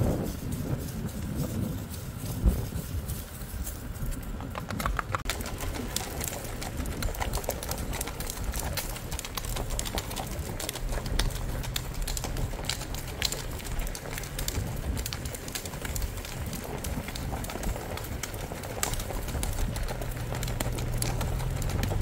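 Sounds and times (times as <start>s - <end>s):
hoofbeats on dirt road: 0.0s - 22.0s.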